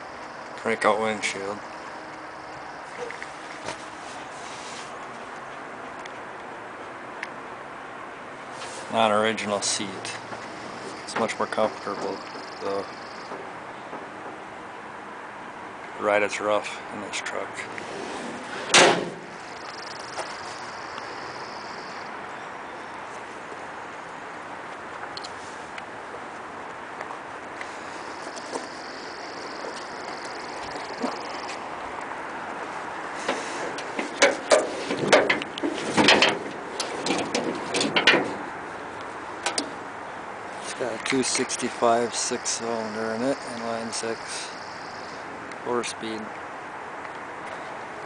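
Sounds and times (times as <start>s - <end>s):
outdoor background hiss: 0.0s - 48.0s
metal hood clunking and knocking: 18.2s - 19.4s, 33.3s - 38.5s.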